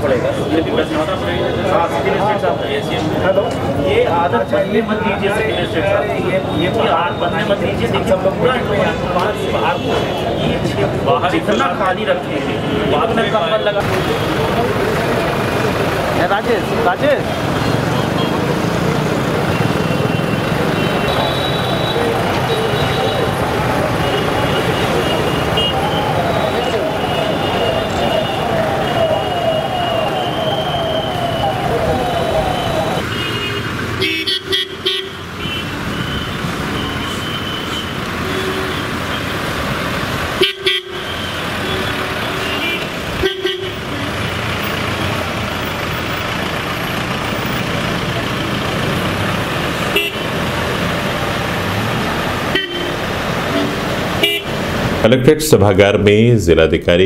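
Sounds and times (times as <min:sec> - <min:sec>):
car horns tooting: 0:00.0 - 0:03.6, 0:04.2 - 0:07.7, 0:08.6 - 0:11.8, 0:16.5 - 0:18.8, 0:19.4 - 0:39.6, 0:40.3 - 0:44.8, 0:49.8 - 0:50.6, 0:52.4 - 0:54.6
crowd chatter: 0:00.0 - 0:33.4
vehicles running: 0:00.0 - 0:57.0.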